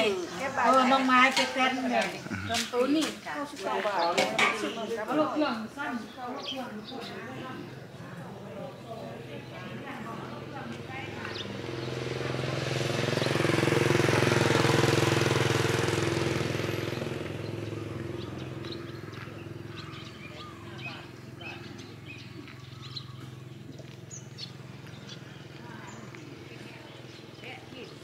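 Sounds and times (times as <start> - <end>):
vehicle driving past: 7.7 - 27.5.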